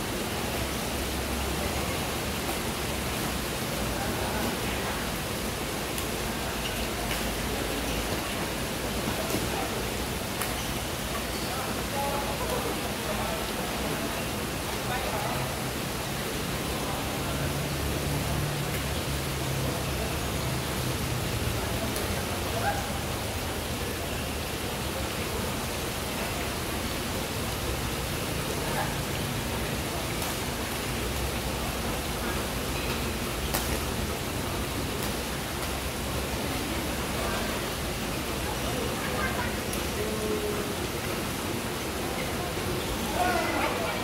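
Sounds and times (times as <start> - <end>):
steady hall hiss: 0.0 - 44.0.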